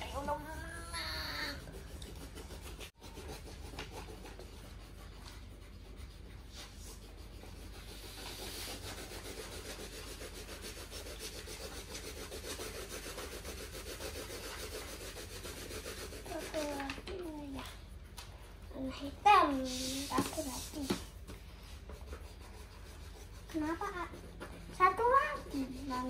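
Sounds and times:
pencils scratching on paper: 0.0 - 26.0.

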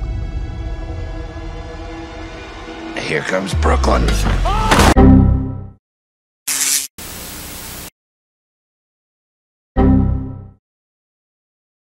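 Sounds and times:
burst of static: 6.5 - 7.9
steady static hiss: 6.5 - 7.9.

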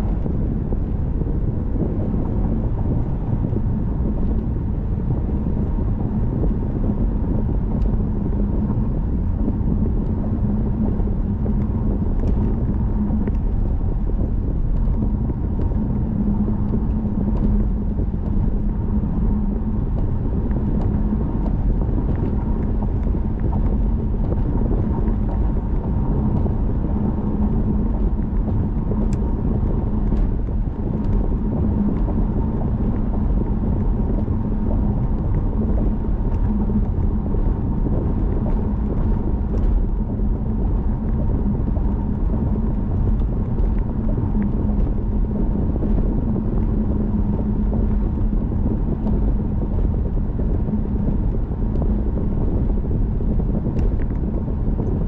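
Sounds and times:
car cabin road drone: 0.0 - 55.0
steady hum: 0.0 - 55.0.

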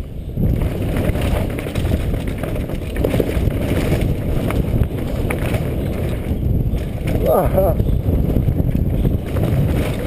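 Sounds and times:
bike rattling over bumps: 0.0 - 10.0
tyres rumbling over dirt and rocks: 0.0 - 10.0
wind rushing over microphone: 0.0 - 10.0.

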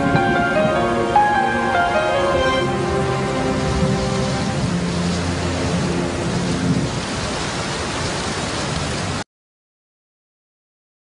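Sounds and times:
music low held notes: 0.0 - 6.9
steady rain: 0.0 - 9.3.

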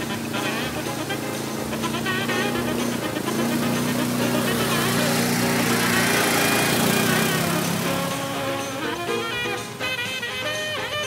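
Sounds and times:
background music: 0.0 - 11.0
quad engine running: 0.0 - 11.0
vehicle ploughing through mud: 0.0 - 11.0.

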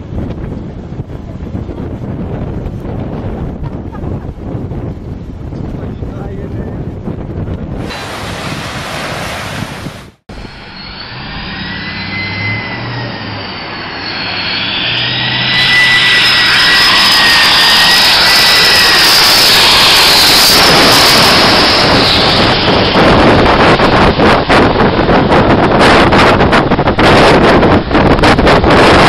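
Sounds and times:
airliner jet noise climbing: 0.0 - 29.0
jet engines on approach: 0.0 - 29.0.

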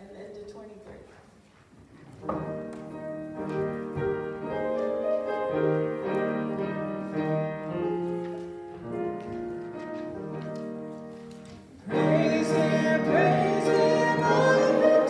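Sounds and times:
piano playing hymn chords: 2.2 - 15.0.

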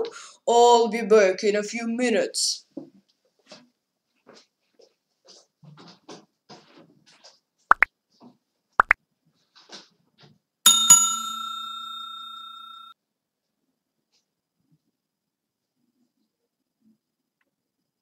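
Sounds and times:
bell-like ding: 10.7 - 13.0.

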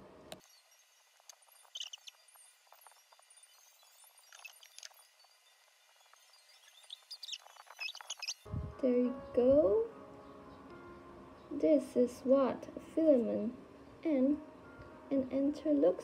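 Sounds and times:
faint chime-like music: 0.4 - 16.0.

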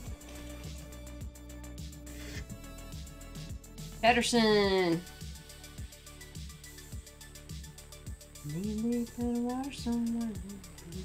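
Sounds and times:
electronic music: 0.0 - 11.0
steady kick drum beat: 0.0 - 11.0.

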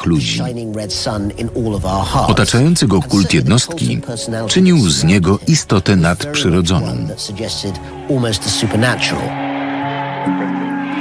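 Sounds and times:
person speaking: 0.0 - 7.8.

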